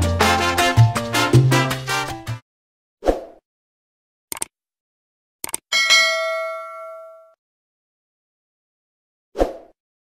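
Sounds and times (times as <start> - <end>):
bell ding sound effect: 5.7 - 7.4.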